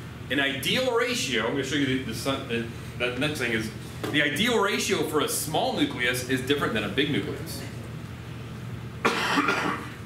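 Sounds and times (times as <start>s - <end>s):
man coughing: 9.0s - 10.0s.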